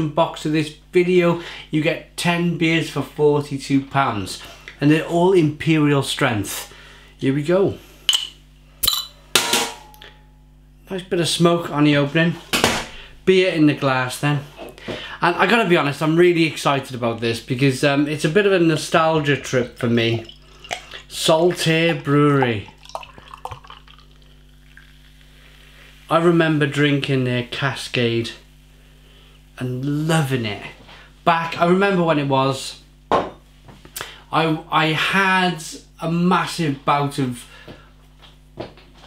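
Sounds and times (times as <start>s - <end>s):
bottle opener metallic click: 8.1s - 9.1s
carbonation gas hissing: 18.8s - 26.6s
beer pouring into a glass: 19.1s - 25.2s.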